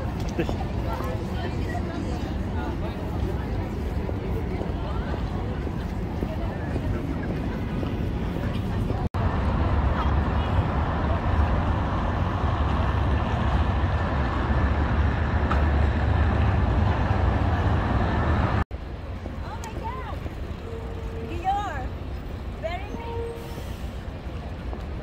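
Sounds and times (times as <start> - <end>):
traffic rumble: 0.0 - 25.0.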